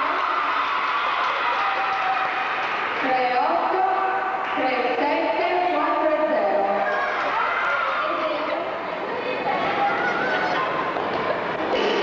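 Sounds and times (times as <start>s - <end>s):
crowd noise: 0.0s - 12.0s
people laughing: 8.9s - 12.0s.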